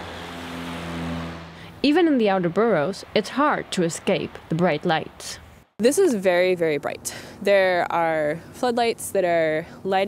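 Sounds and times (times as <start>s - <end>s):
car passing: 0.0s - 5.7s.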